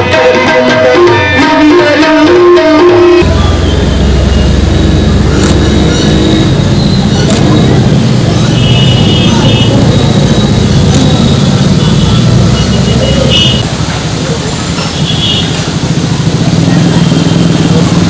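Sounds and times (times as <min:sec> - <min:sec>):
faint crowd voices: 0:00.0 - 0:18.0
low rumble of road traffic: 0:03.2 - 0:18.0.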